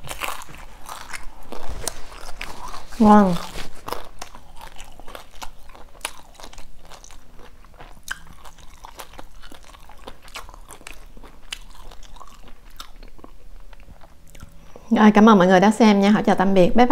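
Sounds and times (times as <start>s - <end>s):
chewing crispy food: 0.0s - 14.8s.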